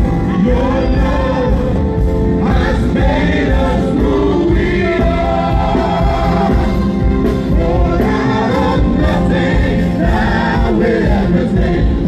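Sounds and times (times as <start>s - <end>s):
group of singers: 0.0s - 12.0s
keyboard accompaniment: 0.0s - 12.0s.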